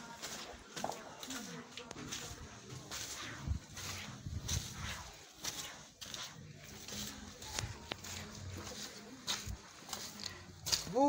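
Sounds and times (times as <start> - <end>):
footsteps on muddy path: 0.0 - 11.0.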